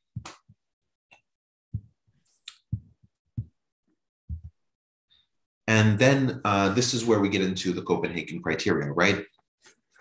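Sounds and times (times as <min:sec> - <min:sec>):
soft dull thumps: 0:01.7 - 0:02.0, 0:02.7 - 0:03.6, 0:04.3 - 0:04.6.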